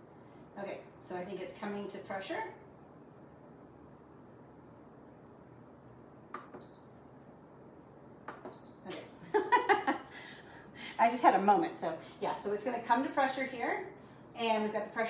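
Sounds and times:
woman's voice: 0.6 - 2.6, 10.9 - 15.0.

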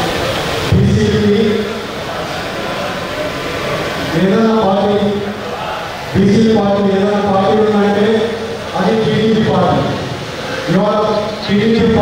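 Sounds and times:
crowd shouting: 1.6 - 7.8.

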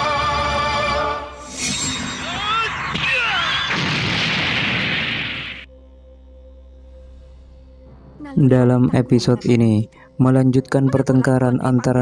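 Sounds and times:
explosion-like burst: 2.9 - 5.7.

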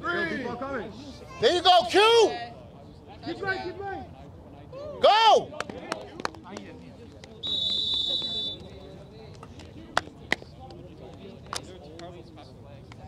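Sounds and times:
distant players' voices: 0.0 - 13.0
referee's whistle: 7.4 - 8.8.

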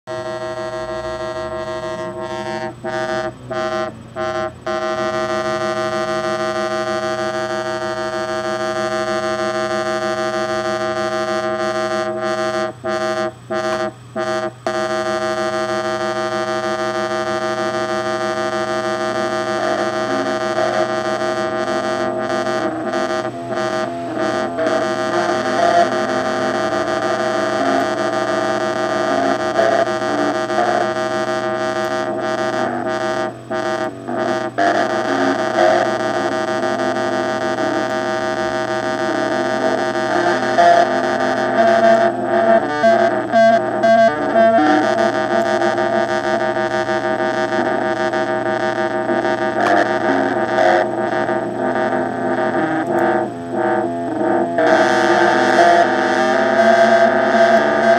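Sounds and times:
buzzy synthesizer drone: 0.0 - 57.9
stepping synth note pattern: 0.1 - 57.9.

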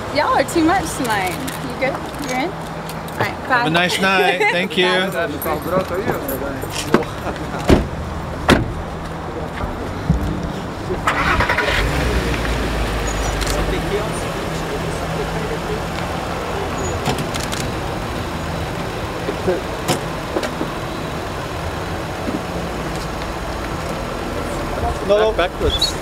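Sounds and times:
car engine starting and idling: 5.2 - 26.0.

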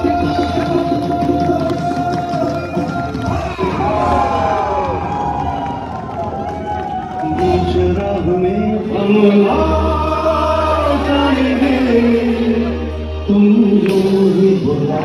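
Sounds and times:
crowd singing and cheering: 0.0 - 15.0
live concert music: 0.0 - 15.0.

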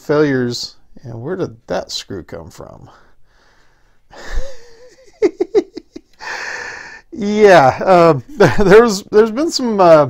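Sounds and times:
man laughing breathily: 4.1 - 7.1.

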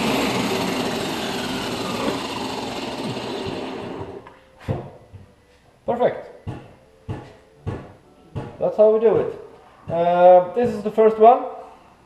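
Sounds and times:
footsteps on workshop floor: 4.2 - 5.8, 6.5 - 11.0.

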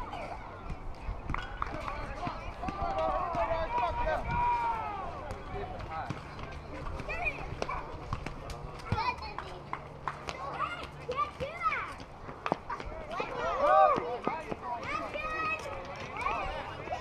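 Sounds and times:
distant voices shouting: 2.1 - 5.5.

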